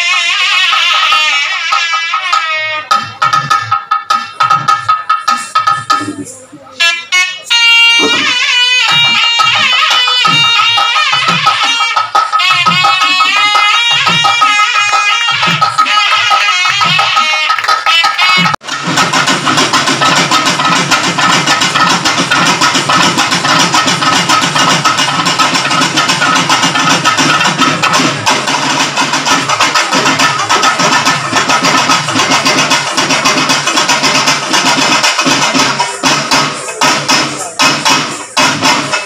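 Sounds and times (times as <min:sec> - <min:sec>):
folk drum ensemble playing: 0:00.0 - 0:39.0.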